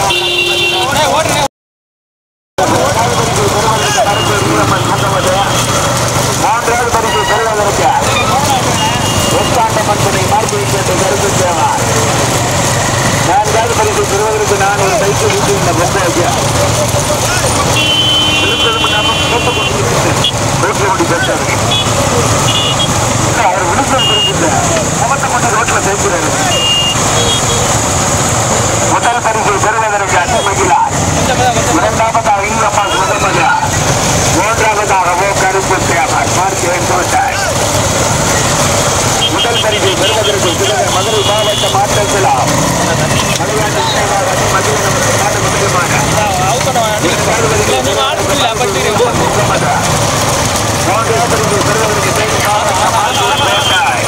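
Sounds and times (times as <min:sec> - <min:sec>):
motorcycle engines running: 0:00.0 - 0:01.5, 0:02.6 - 0:54.0
people's voices: 0:00.0 - 0:01.5, 0:02.6 - 0:54.0.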